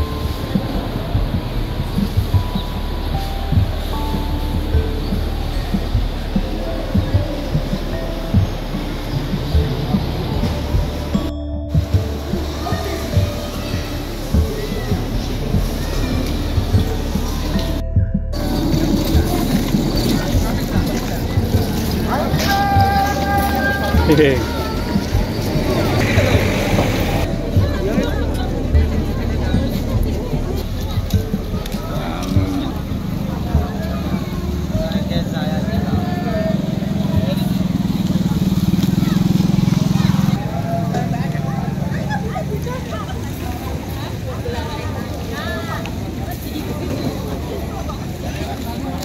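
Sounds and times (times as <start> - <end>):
steady low rumble: 0.0 - 43.8
many people talking: 0.0 - 49.0.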